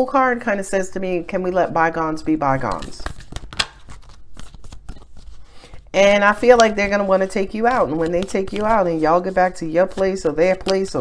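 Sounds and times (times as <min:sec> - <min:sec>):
cards being shuffled: 0:02.6 - 0:11.0.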